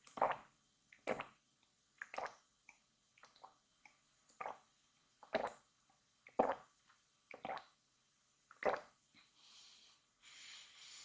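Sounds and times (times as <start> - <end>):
person gulping water: 0.0 - 1.4, 2.0 - 2.4, 5.2 - 5.6, 6.3 - 6.7, 7.3 - 7.7, 8.5 - 8.9
wet throat and lip clicks: 1.0 - 1.4, 2.0 - 2.4, 5.2 - 5.6.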